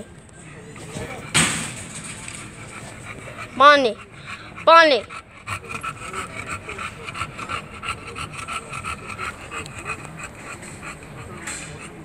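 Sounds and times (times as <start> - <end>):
dog panting rapidly: 0.4 - 12.0.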